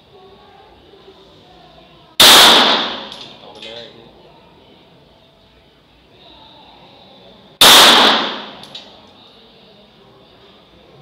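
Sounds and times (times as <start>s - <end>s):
pistol shot: 2.2s - 3.3s, 7.6s - 8.8s.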